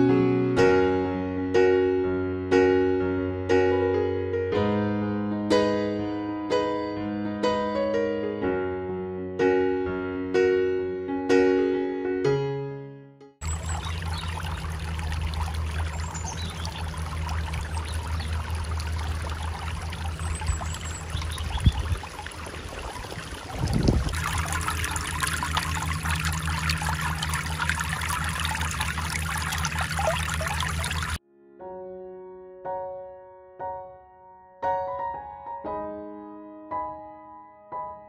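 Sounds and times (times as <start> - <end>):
fountain water trickling and splashing: 13.4 - 31.2
steady low rumble: 13.4 - 31.2.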